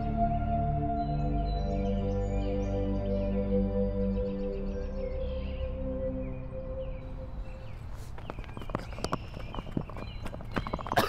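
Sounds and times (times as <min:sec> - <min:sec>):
ambient music tone: 0:00.0 - 0:07.9
footsteps on a hard path: 0:07.2 - 0:11.0.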